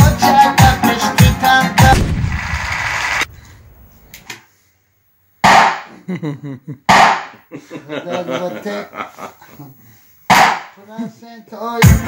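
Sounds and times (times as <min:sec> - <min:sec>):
noisy crash-like wash: 0:01.9 - 0:03.8.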